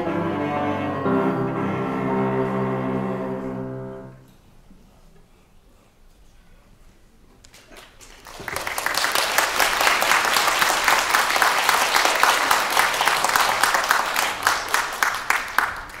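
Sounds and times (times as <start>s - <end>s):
audience applauding: 7.5s - 16.0s.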